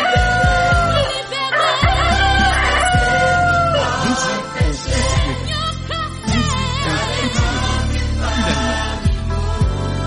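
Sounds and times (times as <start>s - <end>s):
rooster crowing: 0.0s - 4.4s
christian music with keyboard: 0.0s - 10.0s
bass drum beat: 0.2s - 1.0s, 1.8s - 3.7s, 4.6s - 5.6s.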